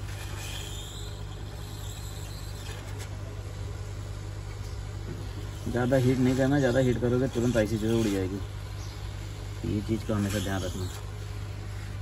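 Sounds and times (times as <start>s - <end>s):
hot air gun blower humming: 0.0s - 12.0s.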